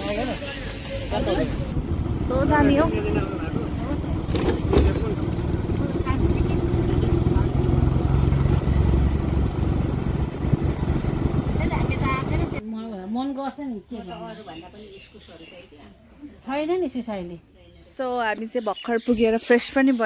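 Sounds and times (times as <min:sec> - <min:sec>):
vehicle engine and road rumble: 0:00.0 - 0:12.7.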